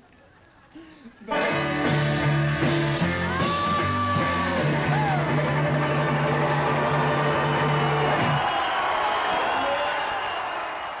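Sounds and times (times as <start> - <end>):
bluegrass band with banjo and guitar: 1.2 - 7.0
audience applauding and cheering: 1.6 - 11.0.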